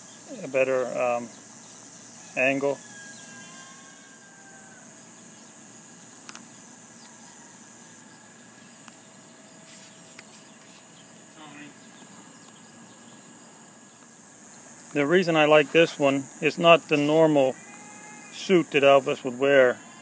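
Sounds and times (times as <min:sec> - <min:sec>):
high-pitched hiss: 0:00.0 - 0:11.8, 0:12.7 - 0:20.0.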